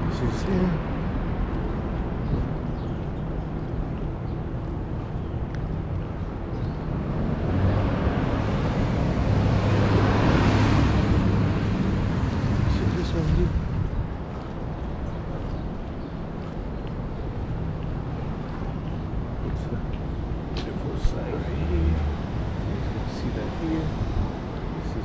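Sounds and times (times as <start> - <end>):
low traffic rumble: 0.0 - 25.0
vehicle engine hum: 0.0 - 25.0.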